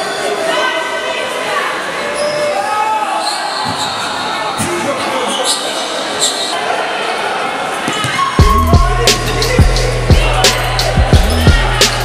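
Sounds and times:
voices shouting in a gym: 0.0s - 12.0s.

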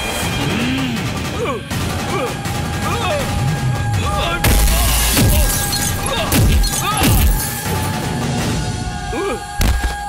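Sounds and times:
dramatic music: 0.0s - 10.0s
glass shattering: 4.5s - 7.6s.

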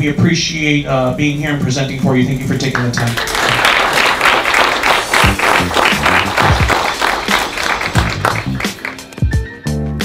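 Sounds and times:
upbeat music with bass line: 0.0s - 10.0s
audience applauding: 2.8s - 9.4s.

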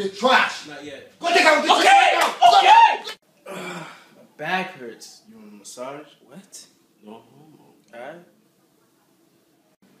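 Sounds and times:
loud wordless shouting: 1.2s - 3.2s.

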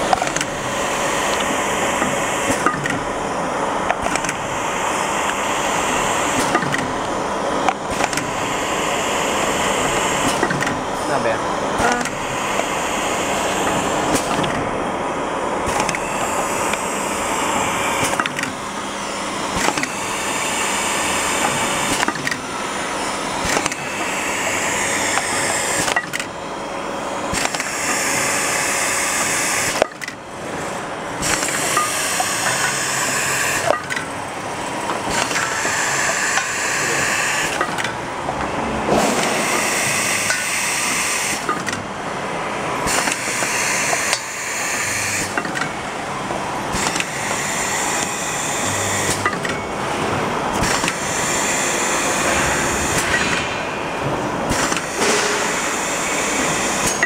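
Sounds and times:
machine whir and hiss: 0.0s - 57.0s
machine clicks and knocks: 0.1s - 0.6s, 1.3s - 3.1s, 3.9s - 4.5s, 6.4s - 7.0s, 7.7s - 8.4s, 10.2s - 10.8s, 21.4s - 22.4s, 23.4s - 23.8s, 27.4s - 28.0s, 45.2s - 45.8s, 49.0s - 51.4s, 52.1s - 55.8s.

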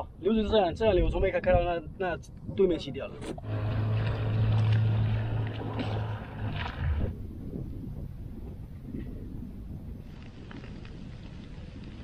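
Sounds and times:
wind: 0.0s - 12.0s
water noise: 2.2s - 12.0s
boat motor humming: 3.2s - 8.8s.

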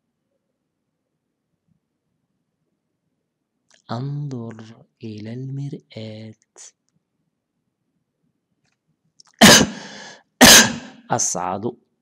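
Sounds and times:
person sneezing: 9.3s - 11.1s.

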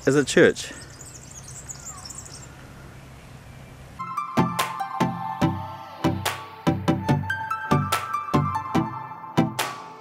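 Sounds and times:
faint high chirping: 0.6s - 3.9s.

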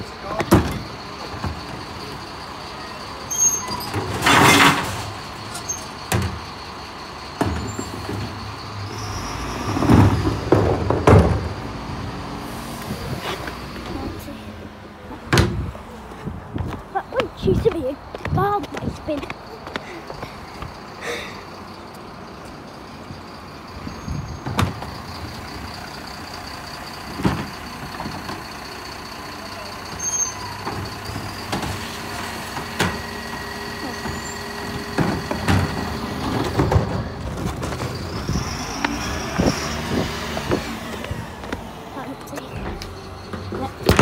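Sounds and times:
truck engine with high whine: 0.0s - 44.0s
bins knocking and clattering: 9.8s - 11.6s, 34.0s - 38.2s, 42.6s - 44.0s.

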